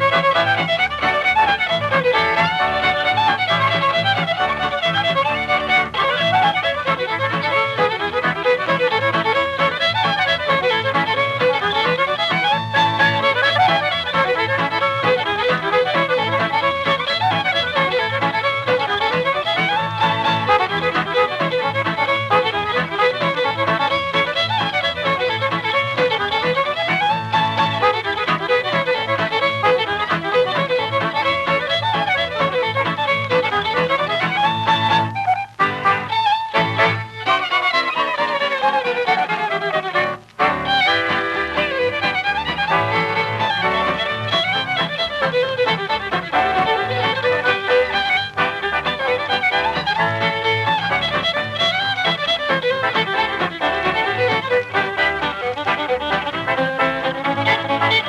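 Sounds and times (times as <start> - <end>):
fiddle playing fast dance tune: 0.0 - 58.0
rhythm accompaniment: 0.0 - 58.0.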